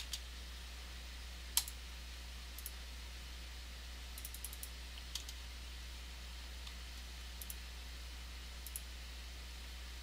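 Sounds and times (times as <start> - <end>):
keyboard and mouse clicks: 1.6 - 1.8, 2.6 - 2.8, 4.2 - 5.4, 6.6 - 7.6, 8.6 - 8.9.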